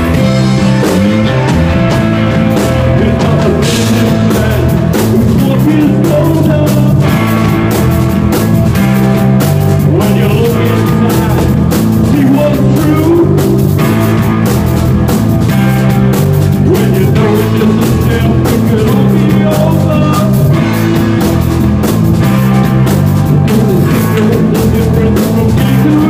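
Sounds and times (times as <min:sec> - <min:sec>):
bass guitar: 0:00.0 - 0:26.0
drums: 0:00.0 - 0:26.0
electric guitar: 0:00.0 - 0:26.0.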